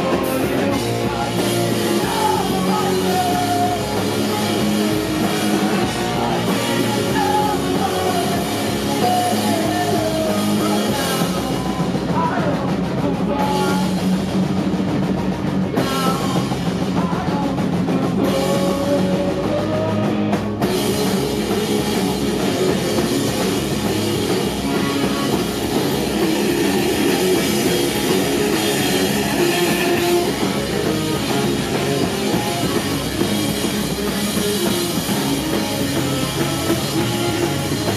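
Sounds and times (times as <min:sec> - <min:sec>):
bass guitar: 0:00.0 - 0:37.9
distorted electric guitars: 0:00.0 - 0:37.9
drum kit: 0:00.0 - 0:37.9.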